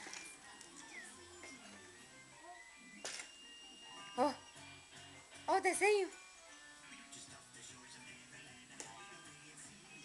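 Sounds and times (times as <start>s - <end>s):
electronic toy jingle: 0.8s - 4.9s.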